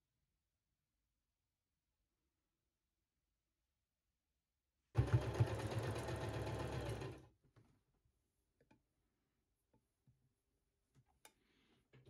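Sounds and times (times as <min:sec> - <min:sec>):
sewing machine stitching: 0:05.0 - 0:07.3.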